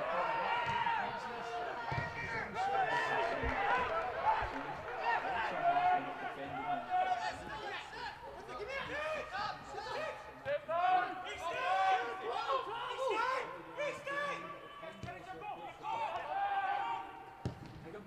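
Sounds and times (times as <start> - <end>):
footballers shouting: 0.0 - 18.0.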